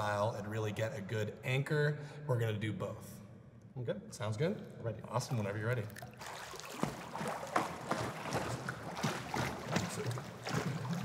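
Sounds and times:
pool water lapping and splashing: 0:05.0 - 0:11.0.

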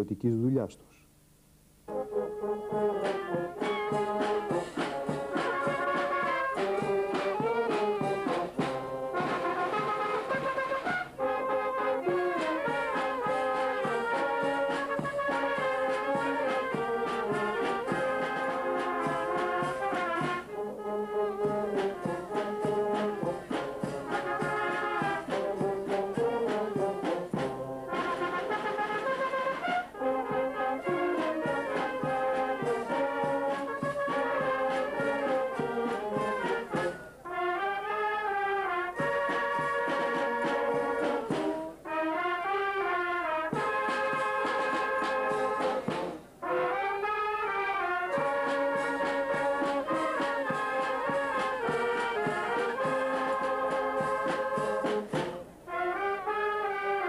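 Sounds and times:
wind band playing: 0:01.8 - 0:57.0.

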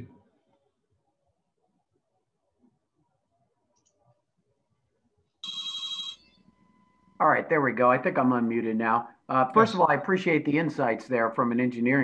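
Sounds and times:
electronic ringing tone: 0:05.4 - 0:07.1.

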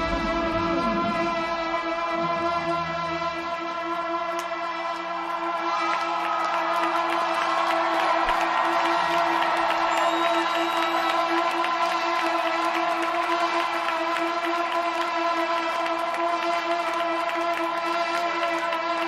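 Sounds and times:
trombone holding long note: 0:00.0 - 0:06.0
arena crowd cheering: 0:03.4 - 0:19.0.

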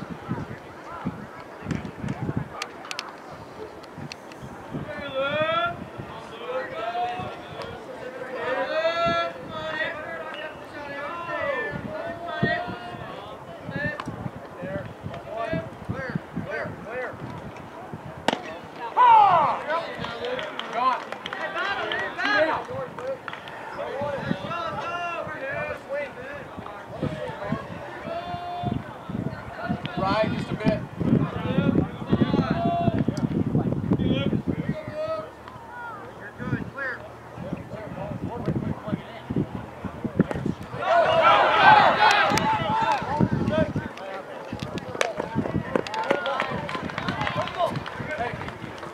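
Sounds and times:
people shouting: 0:18.8 - 0:19.6, 0:40.7 - 0:43.2
voices calling out: 0:34.6 - 0:48.9.

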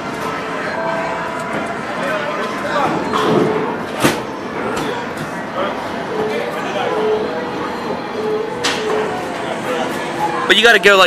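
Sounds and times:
electronic machine tones: 0:00.0 - 0:11.0.

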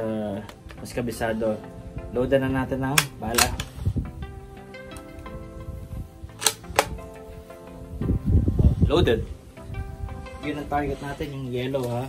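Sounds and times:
background music: 0:00.0 - 0:12.0
air rifle bolt clicking: 0:02.9 - 0:04.0, 0:06.3 - 0:07.1.

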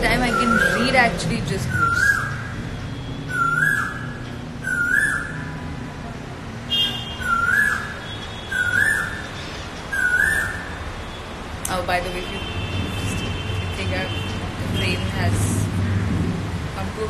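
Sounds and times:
bird calling: 0:03.3 - 0:05.5, 0:07.2 - 0:09.3, 0:09.9 - 0:10.8.

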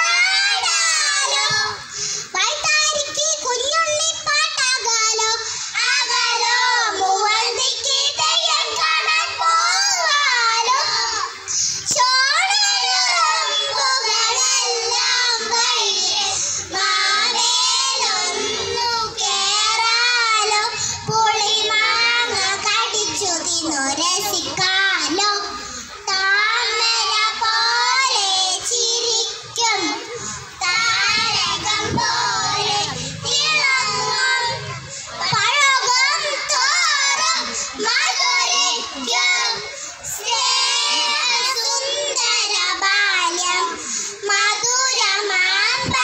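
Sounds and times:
children singing: 0:00.0 - 0:46.0.

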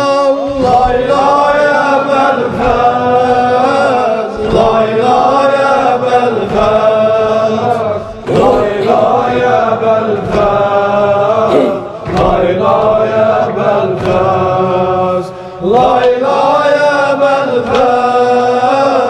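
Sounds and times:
man chanting elegy: 0:11.4 - 0:11.9.

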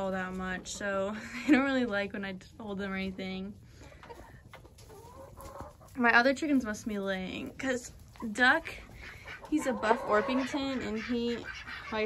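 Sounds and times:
hens clucking: 0:03.6 - 0:12.0.

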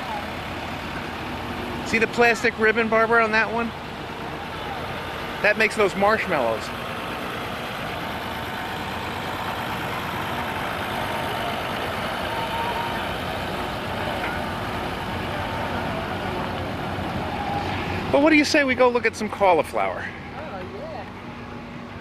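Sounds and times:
tractor engine running: 0:00.0 - 0:22.0.

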